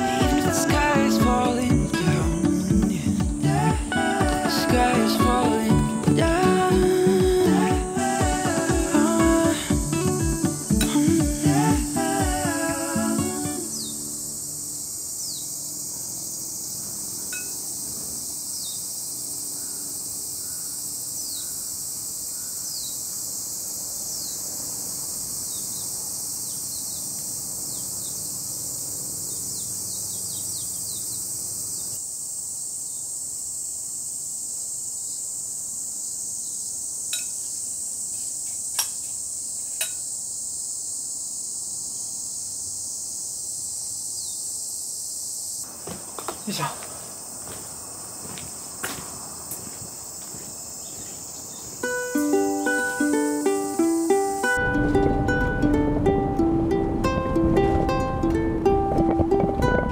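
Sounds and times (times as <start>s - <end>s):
falling chirps: 0.0s - 32.0s, 43.2s - 56.0s
insects chorus: 0.0s - 59.9s.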